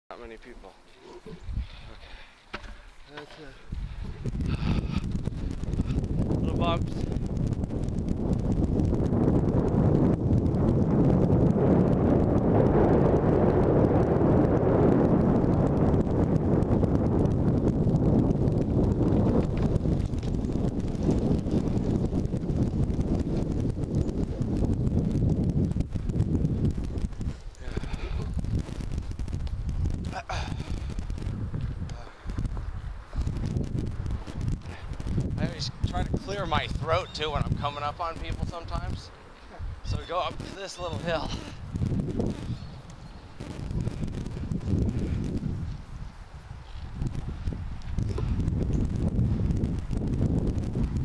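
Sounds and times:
skateboard wheels rolling on asphalt: 1.4 - 51.0.

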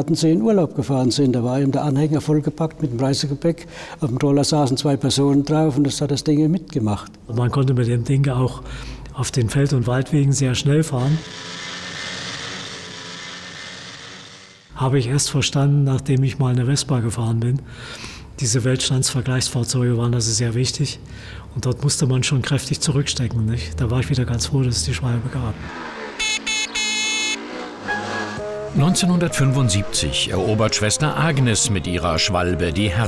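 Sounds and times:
scooter engine running: 10.4 - 14.8, 25.7 - 28.8
moped horn tooting: 26.2 - 28.8.

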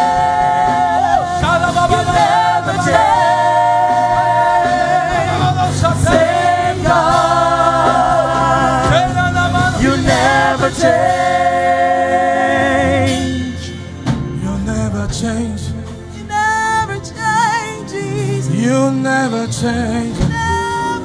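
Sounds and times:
group singing gospel: 0.0 - 14.8
low keyboard notes: 0.0 - 21.0.

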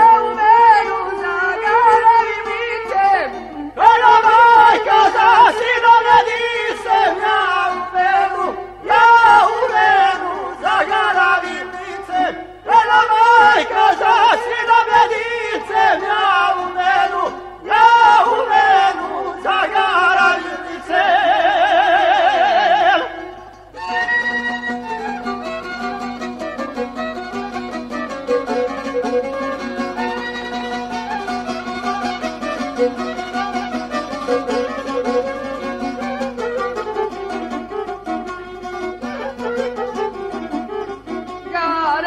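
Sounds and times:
men singing with vibrato: 0.0 - 23.8
quick string instrument notes: 23.0 - 41.9.

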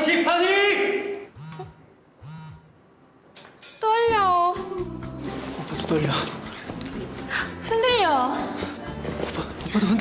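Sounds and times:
phone vibrating buzz: 1.3 - 2.8
woman's voice: 3.8 - 5.0, 7.6 - 8.6.

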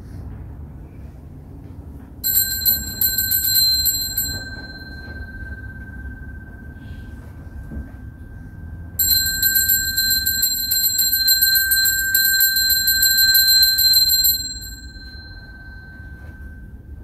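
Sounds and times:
altar bells ringing: 2.2 - 17.0.

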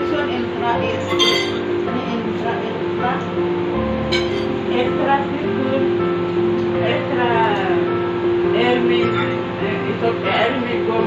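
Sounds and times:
tableware clink: 1.0 - 1.6, 4.1 - 4.5
guitar music: 3.6 - 5.1.

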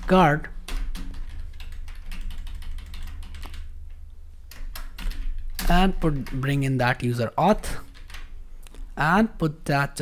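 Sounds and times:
computer keyboard typing: 0.0 - 6.7, 7.7 - 8.3.

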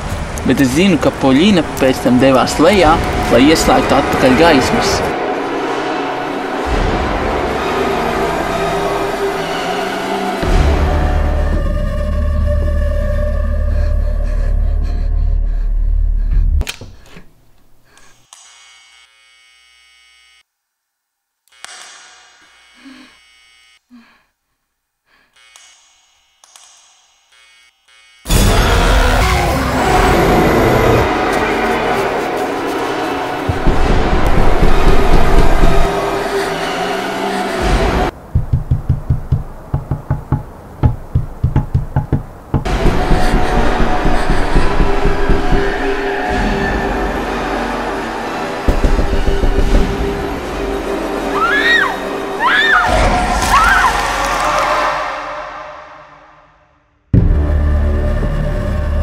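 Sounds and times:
scary music: 1.2 - 16.7, 28.3 - 59.0
rapid knocking thuds: 33.5 - 36.0, 38.2 - 46.2, 48.7 - 50.4.

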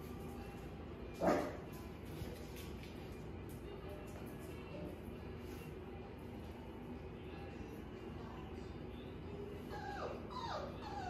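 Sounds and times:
puppy whimpering: 9.6 - 11.0.

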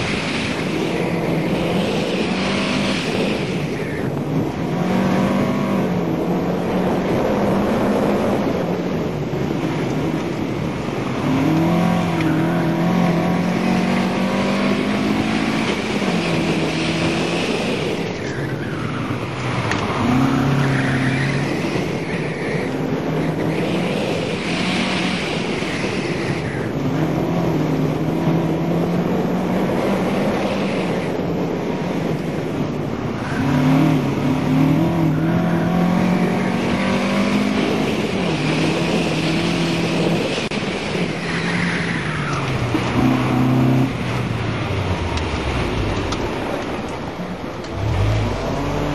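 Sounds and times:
car engine revving: 9.4 - 18.1, 18.7 - 48.9
tires squealing: 11.3 - 27.2, 33.0 - 44.0.

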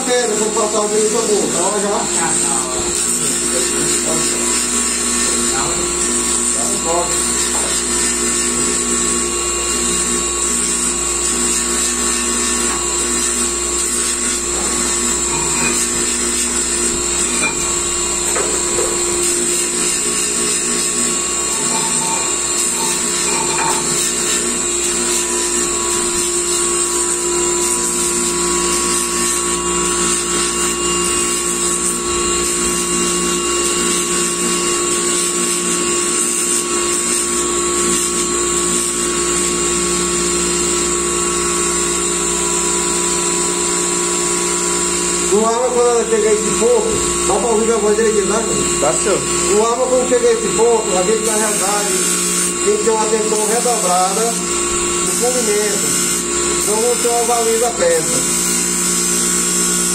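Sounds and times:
polishing wheel motor whining: 0.0 - 59.9
steel grinding on wheel: 0.2 - 35.4.

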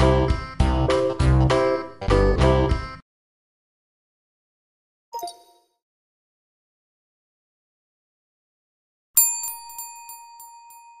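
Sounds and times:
bell ding: 9.2 - 11.0.

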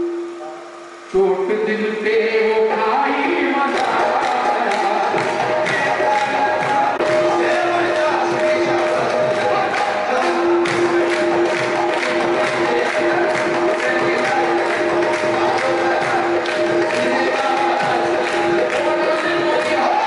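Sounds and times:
harmoniums holding notes: 0.0 - 20.0
men singing together: 2.0 - 20.0
regular drum beat: 3.8 - 20.0.

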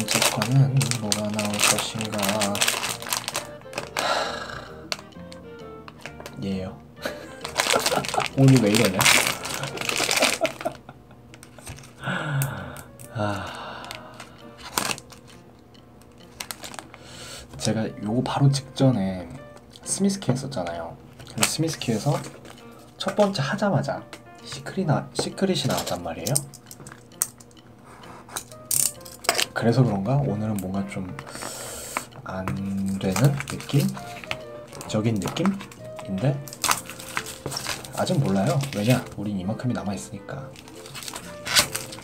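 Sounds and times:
blade rasping through plastic film: 0.0 - 4.1, 7.4 - 10.7, 33.0 - 39.2, 40.6 - 42.0
foil wrapper crinkling: 0.0 - 6.4, 7.0 - 12.1, 13.0 - 15.4, 16.1 - 17.8, 21.2 - 23.4, 28.4 - 29.6, 31.4 - 39.3, 40.5 - 42.0.

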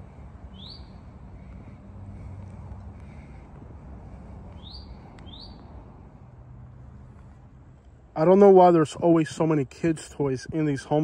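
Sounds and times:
bird chirping: 0.5 - 1.1, 4.5 - 5.7.

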